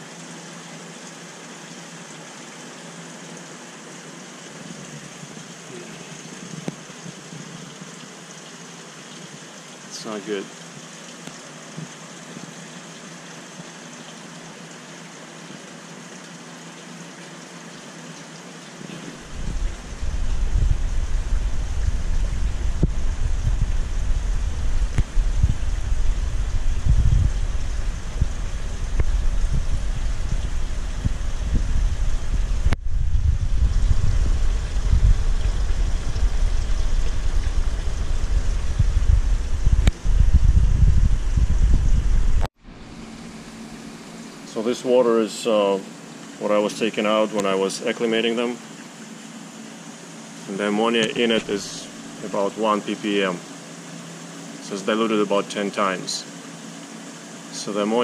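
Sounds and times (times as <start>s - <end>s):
wind buffeting microphone: 19.2s - 42.5s.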